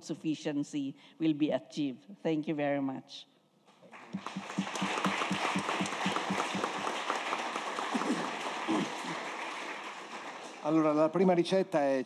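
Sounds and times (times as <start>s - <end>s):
close fast even clapping: 3.9s - 11.1s
audience applauding: 3.9s - 11.4s.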